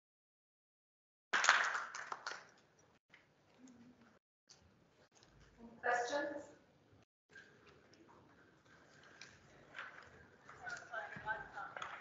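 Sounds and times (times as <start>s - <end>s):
audience clapping: 1.3s - 2.7s.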